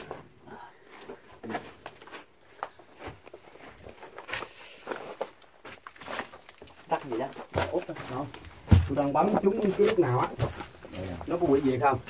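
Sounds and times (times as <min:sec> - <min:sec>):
knocks and scuffs on rock: 0:07.1 - 0:12.0.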